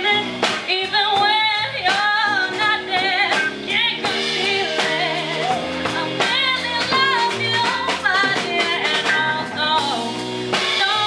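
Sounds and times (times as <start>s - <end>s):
drum hits: 0.0s - 11.0s
live rock band playing: 0.0s - 11.0s
woman singing into a microphone: 0.0s - 11.0s.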